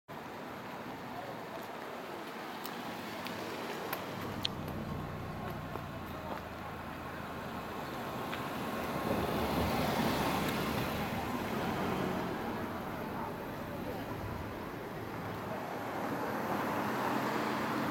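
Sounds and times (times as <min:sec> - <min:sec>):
cars driving past: 0:02.5 - 0:17.9.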